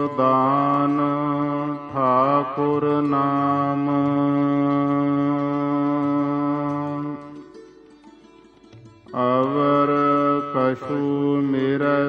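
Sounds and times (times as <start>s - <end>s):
man singing long held note: 0.0s - 7.5s, 9.1s - 12.0s.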